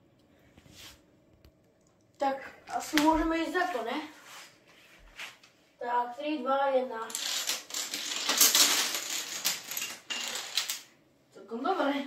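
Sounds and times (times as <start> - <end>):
wooden dominoes toppling: 7.1 - 10.9.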